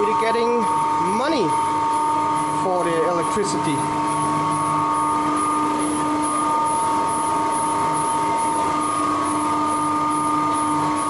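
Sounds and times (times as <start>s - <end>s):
alternator humming with high whine: 0.0s - 11.0s.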